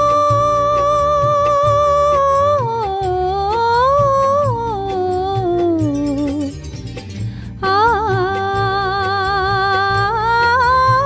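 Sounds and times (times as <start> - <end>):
woman singing wordless vocal: 0.0 - 6.6, 7.6 - 11.0
soft low rhythmic accompaniment: 0.0 - 11.0.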